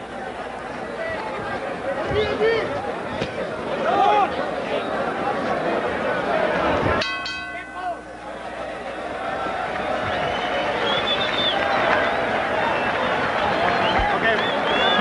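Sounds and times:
crowd cheering and shouting: 0.0s - 15.0s
boxing ring bell: 7.0s - 8.2s
high whistles: 10.0s - 15.0s.

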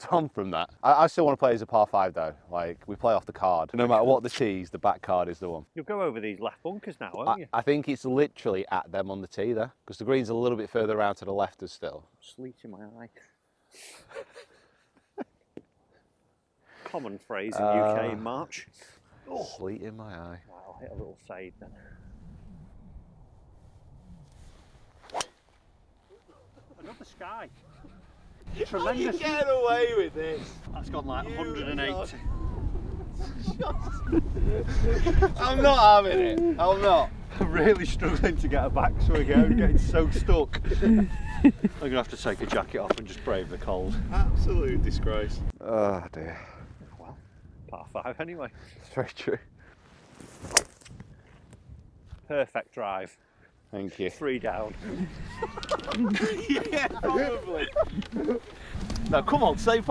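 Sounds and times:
wind rumble on microphone: 20.6s - 25.0s, 27.5s - 45.7s, 46.5s - 49.9s, 50.8s - 52.3s, 54.6s - 59.9s
golf club swish: 23.8s - 26.2s, 50.0s - 51.0s
clubhead striking golf ball: 25.0s - 25.4s.

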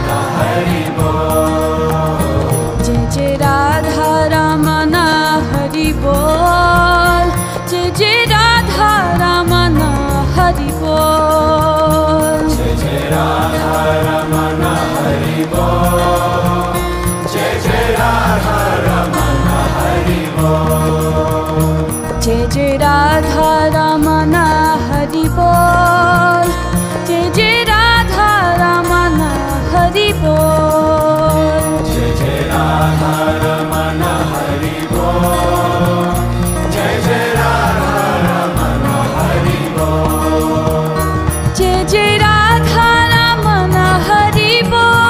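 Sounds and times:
chanted mantra singing: 0.0s - 45.0s
held drone and bass notes: 0.0s - 45.0s.

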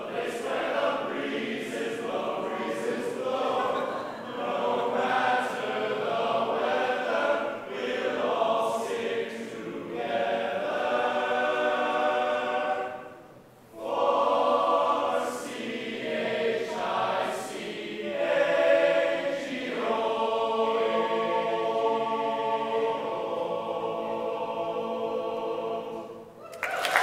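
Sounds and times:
male group singing in harmony: 0.0s - 13.2s, 13.8s - 26.3s.

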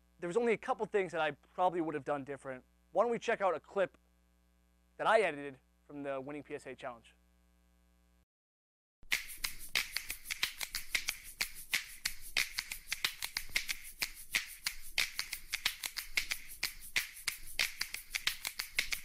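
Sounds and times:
rapid sharp clicking: 9.1s - 19.0s.

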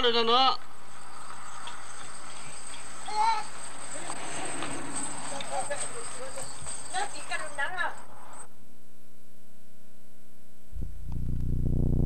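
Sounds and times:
faint high voice: 3.1s - 3.5s
tape hiss: 8.5s - 12.0s.

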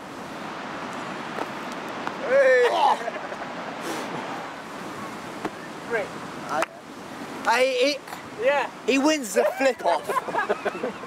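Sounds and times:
surf: 0.0s - 11.0s
wind: 0.0s - 11.0s
short hiss: 3.8s - 4.2s.

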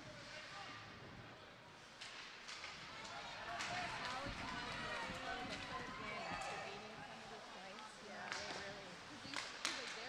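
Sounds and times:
hockey sticks and puck clacking: 1.9s - 4.1s, 9.3s - 10.0s.

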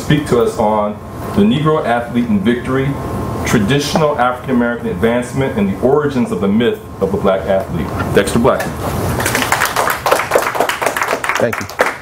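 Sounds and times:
audience applauding: 9.2s - 12.0s.

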